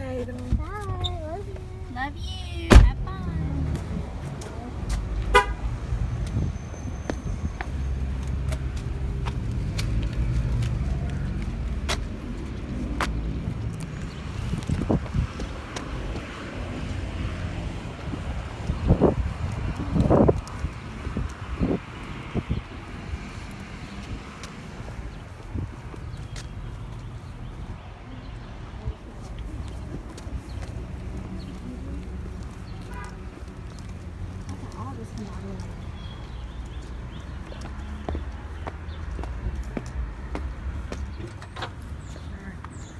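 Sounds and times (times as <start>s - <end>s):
footsteps on asphalt: 0.0s - 42.9s
vehicle engine rumbling: 0.0s - 42.9s
boots walking on concrete: 2.7s - 42.9s
car horn toot: 5.3s - 5.6s.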